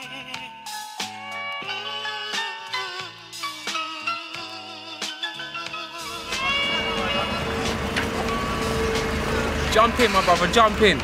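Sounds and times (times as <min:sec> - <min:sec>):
background music held note: 0:06.0 - 0:09.6
car engine running: 0:06.1 - 0:11.0.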